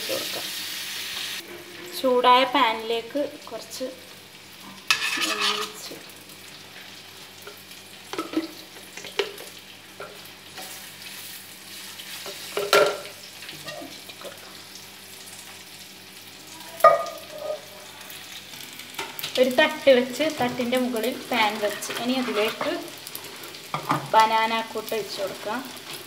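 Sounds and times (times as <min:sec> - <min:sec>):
low background hum: 0:00.0 - 0:26.0
spoon scraping a pot: 0:04.9 - 0:05.8.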